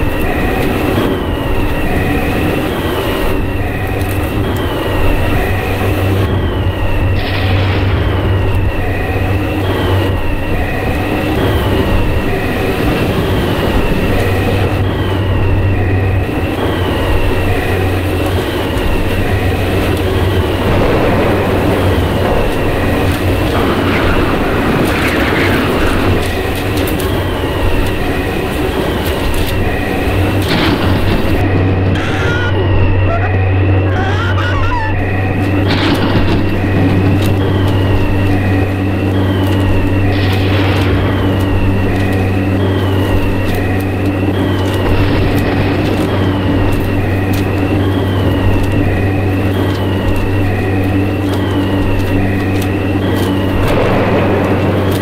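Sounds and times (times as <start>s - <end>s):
constant high tone: 0.0s - 55.0s
falling whine: 0.0s - 55.0s
loud steady rumble: 0.0s - 55.0s.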